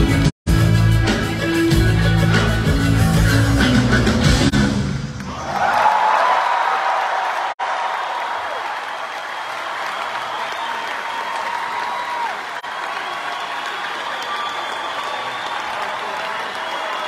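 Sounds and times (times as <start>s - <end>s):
audience applauding: 5.2s - 17.0s.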